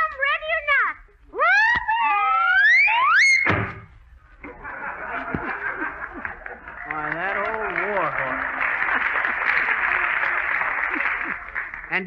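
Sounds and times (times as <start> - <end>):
shrill rising whoops: 1.4 - 3.5
sudden crash: 3.4 - 4.0
audience laughing: 4.4 - 11.9
audience applauding: 4.5 - 12.0.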